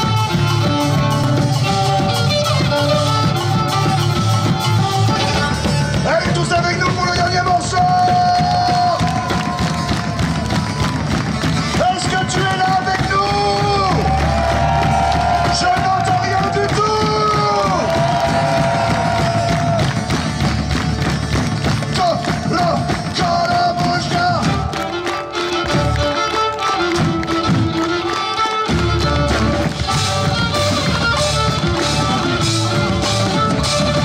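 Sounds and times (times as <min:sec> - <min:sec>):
plucked string instrument: 0:00.0 - 0:09.0, 0:19.7 - 0:34.0
drums: 0:00.0 - 0:34.0
live folk-rock music: 0:00.0 - 0:34.0
audience clapping: 0:04.1 - 0:34.0.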